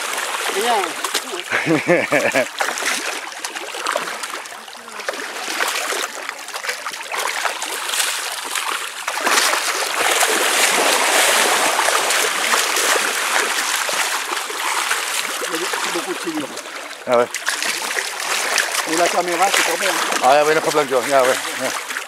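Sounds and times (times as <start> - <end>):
catfish splashing in muddy water: 0.0 - 22.0.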